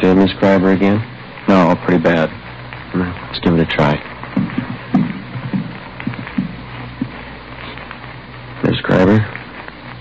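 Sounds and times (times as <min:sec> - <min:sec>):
footsteps on a floor: 0:04.4 - 0:07.2.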